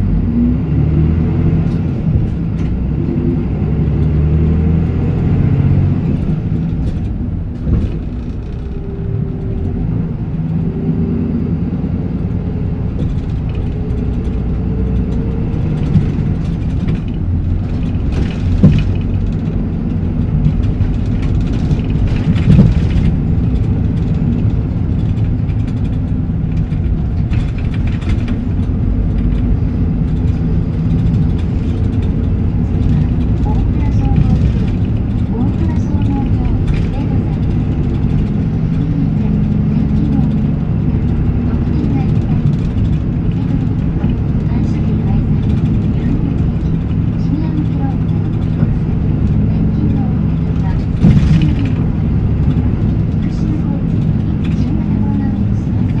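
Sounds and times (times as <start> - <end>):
bus diesel engine running: 0.0 - 56.0.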